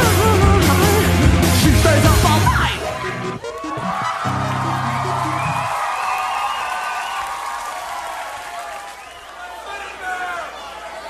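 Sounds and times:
punk rock band playing: 0:00.0 - 0:05.7.

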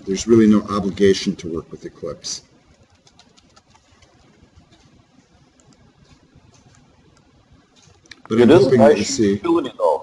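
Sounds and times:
low room hum: 0:00.0 - 0:10.0
computer keyboard keystrokes: 0:02.7 - 0:04.3.

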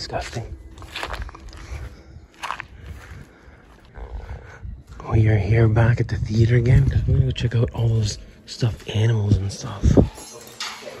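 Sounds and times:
footsteps rustling through dry grass: 0:00.0 - 0:05.0.

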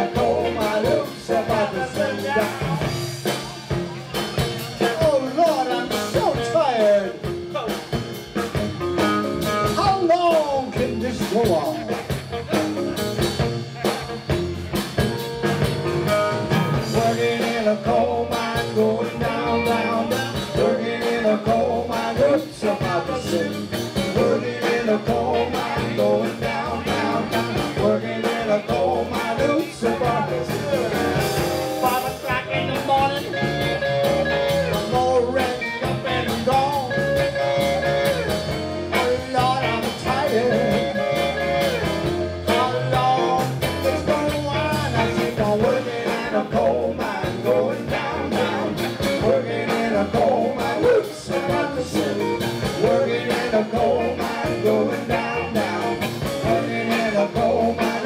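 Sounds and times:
live band playing blues: 0:00.0 - 0:58.0
stage piano: 0:00.0 - 0:58.0.

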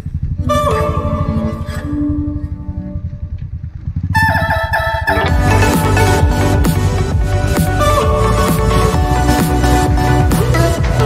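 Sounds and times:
motorcycle engine running: 0:00.0 - 0:11.0
electronic background music: 0:00.4 - 0:03.3, 0:04.2 - 0:11.0.

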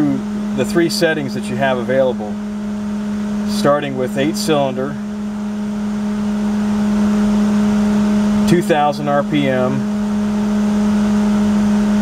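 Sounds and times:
car engine idling: 0:00.0 - 0:12.0
electric cooling fans humming: 0:00.0 - 0:12.0.

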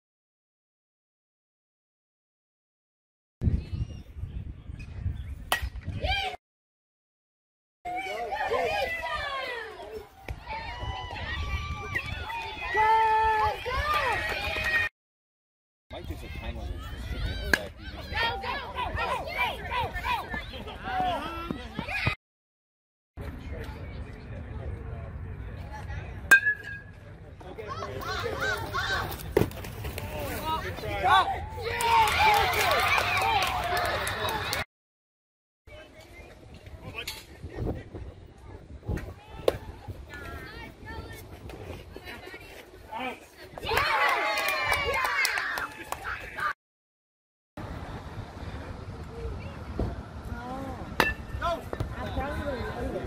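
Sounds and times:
metal bat hitting a ball: 0:05.5 - 0:05.8, 0:26.3 - 0:27.0, 0:51.0 - 0:51.6.

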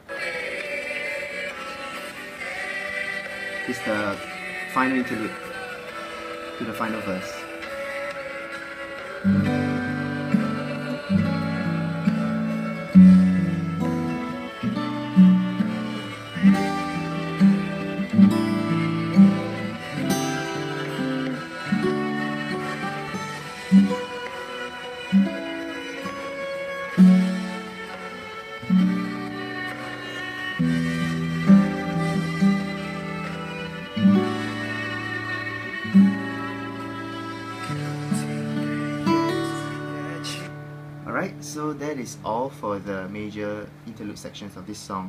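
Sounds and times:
acoustic guitar chords ringing: 0:01.5 - 0:45.0.

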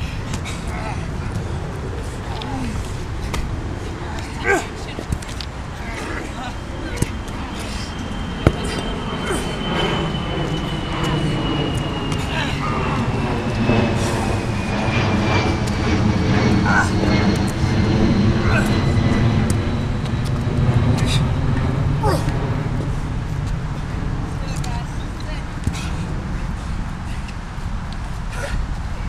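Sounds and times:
vehicle rumble with falling whine: 0:00.0 - 0:29.0.

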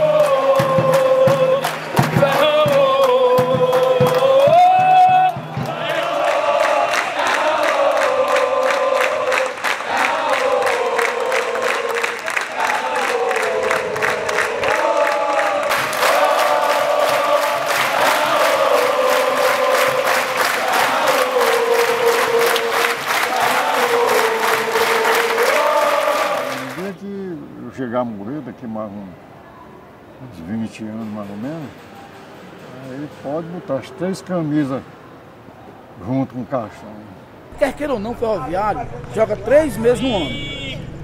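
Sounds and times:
crowd singing a chant: 0:00.0 - 0:26.8
rhythmic hand clapping: 0:00.0 - 0:26.9.

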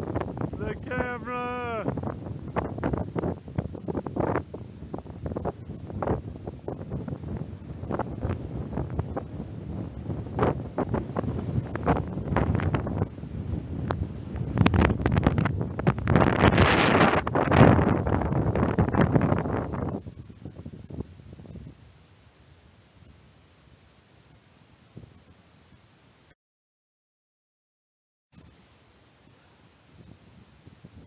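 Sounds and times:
wind buffeting microphone: 0:00.0 - 0:22.0, 0:29.8 - 0:31.0.

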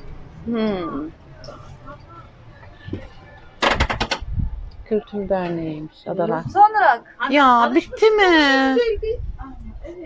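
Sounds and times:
rattle of sharp knocks: 0:03.6 - 0:04.2.

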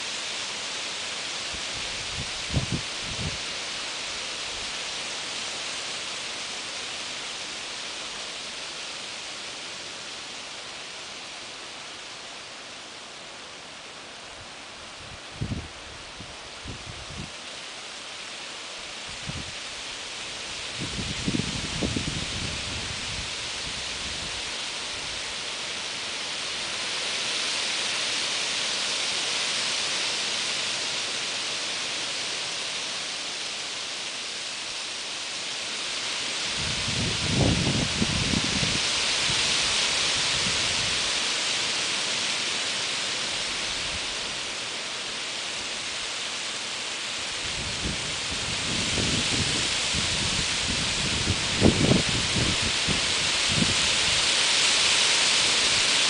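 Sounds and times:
wind rustling leaves: 0:00.0 - 0:56.0.

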